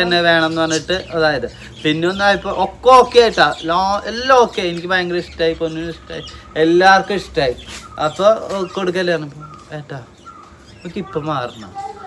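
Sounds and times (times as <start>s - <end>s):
man talking: 0.0s - 10.2s, 10.8s - 11.8s.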